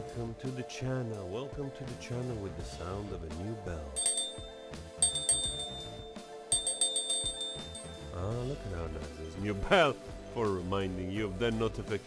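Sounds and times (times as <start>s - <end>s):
background music: 0.0s - 12.0s
hand bell ringing: 4.0s - 8.2s.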